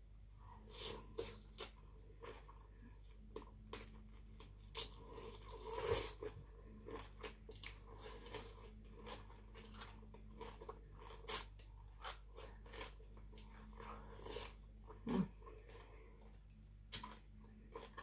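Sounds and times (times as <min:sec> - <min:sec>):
noodles slurped and chewed: 0:00.7 - 0:18.0.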